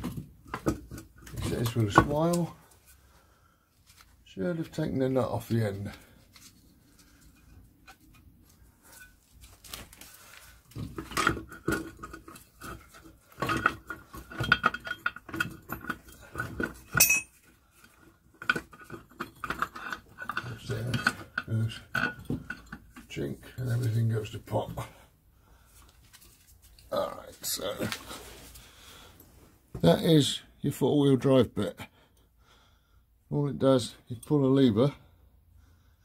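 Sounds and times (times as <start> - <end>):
metal parts clinking and knocking: 10.8 - 23.2.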